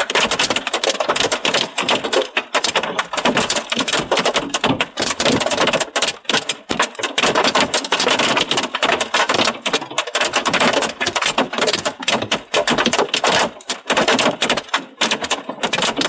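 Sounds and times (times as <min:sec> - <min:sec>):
hailstones pelting glass: 0:00.0 - 0:16.0.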